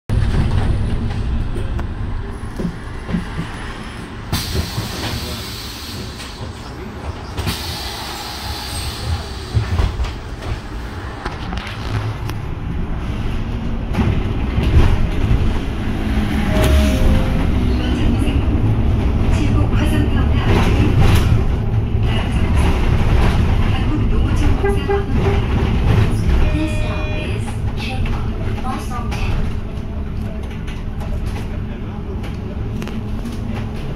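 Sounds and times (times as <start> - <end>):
bus engine and road rumble: 0.1 - 33.9.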